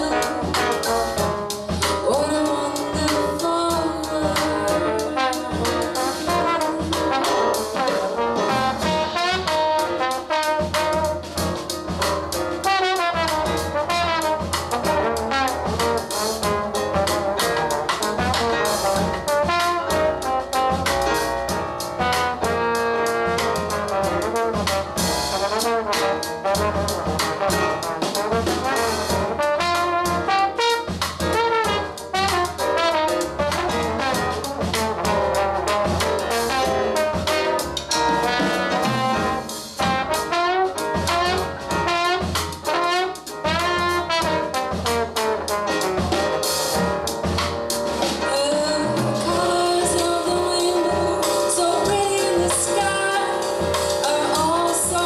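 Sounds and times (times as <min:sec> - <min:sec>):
trumpet solo: 0:00.0 - 0:11.5, 0:12.5 - 0:21.2, 0:22.0 - 0:47.4, 0:48.2 - 0:55.0
jazz band playing: 0:00.0 - 0:55.0.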